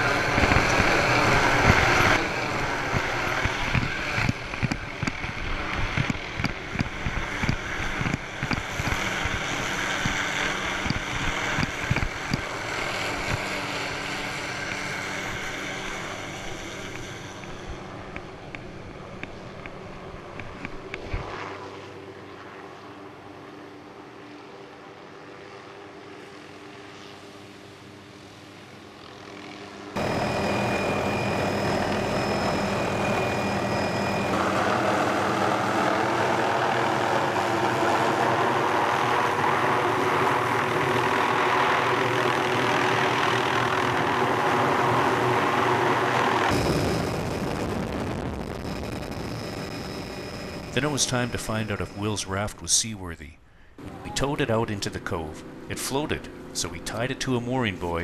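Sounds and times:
loud helicopter noise on board: 0.0 - 52.7, 53.8 - 58.0
helicopter flying off: 0.0 - 58.0.

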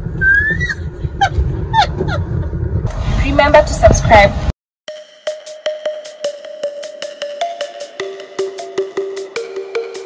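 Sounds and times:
car cabin rumble: 0.0 - 4.3
high-pitched squealing laughter: 0.2 - 2.3.

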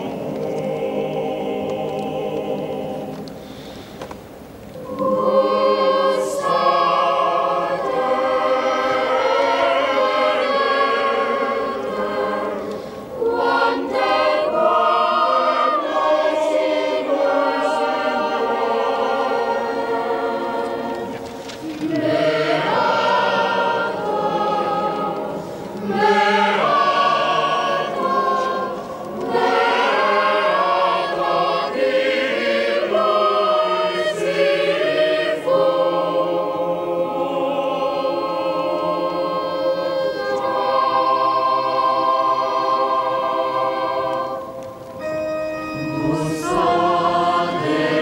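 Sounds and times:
choir singing a hymn: 0.0 - 48.0.

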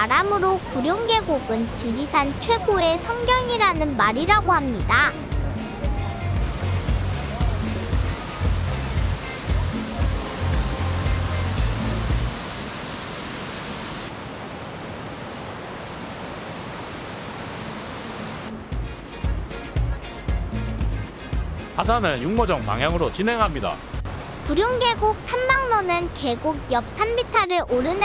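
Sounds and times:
waterfall rushing: 0.0 - 20.2
background music with bass: 2.3 - 12.4, 18.5 - 25.2.

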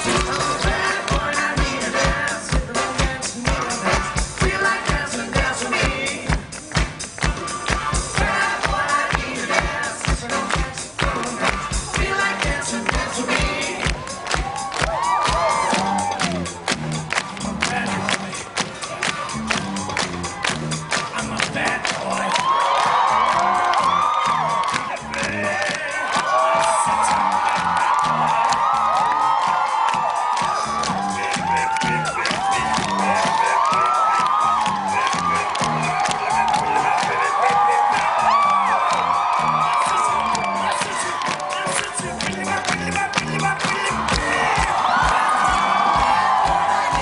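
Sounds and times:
driving drum beat: 0.0 - 47.0
live band playing: 0.0 - 47.0
crowd cheering and screaming: 13.6 - 17.4, 18.8 - 47.0.

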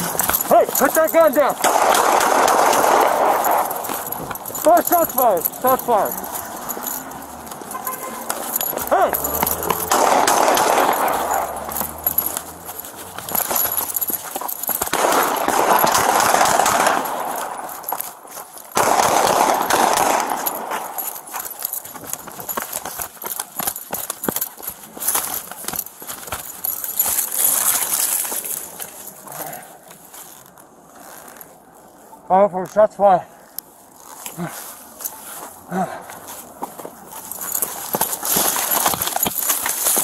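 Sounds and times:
running footsteps: 0.0 - 30.6, 33.6 - 40.0
gear rattling against camera: 0.0 - 32.8, 33.4 - 40.0.

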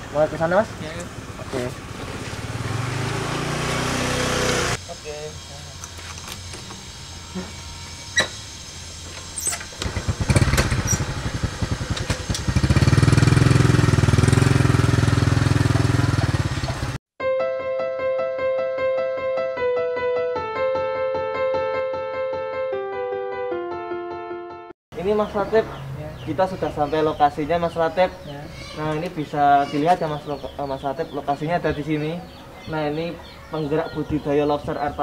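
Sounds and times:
motorcycle engine running: 0.0 - 17.0
piano music: 17.2 - 24.7.

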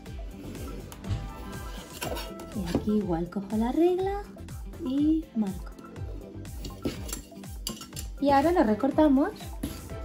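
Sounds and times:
soft background music: 0.0 - 10.0
metal ruler and pencil clinking: 6.6 - 8.2.

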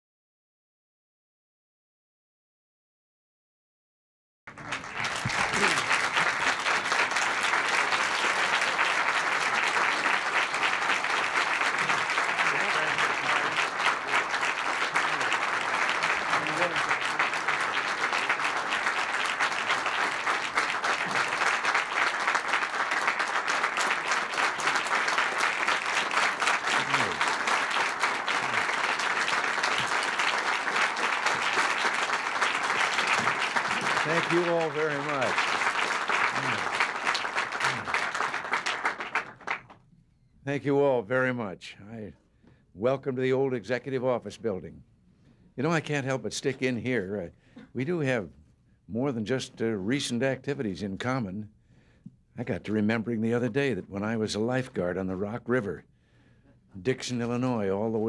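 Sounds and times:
audience applauding: 4.5 - 39.8.

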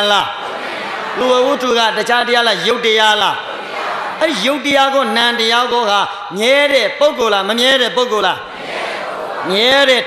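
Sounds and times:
man preaching through microphone: 0.0 - 0.5, 1.1 - 3.6, 4.2 - 8.5, 9.4 - 10.0.

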